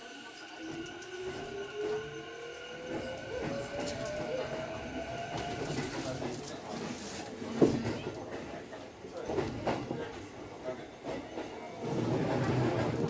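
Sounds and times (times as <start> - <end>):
train wheel rumble: 0.6 - 13.0.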